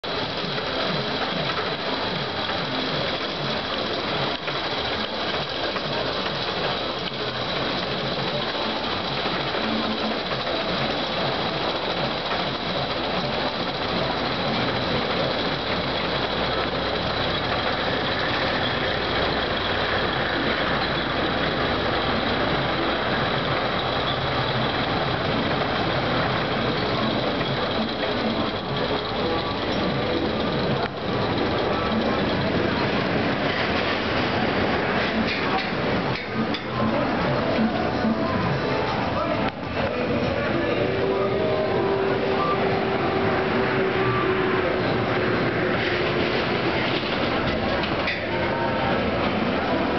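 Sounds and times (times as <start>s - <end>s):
roller coaster clattering on track: 0.0s - 49.9s.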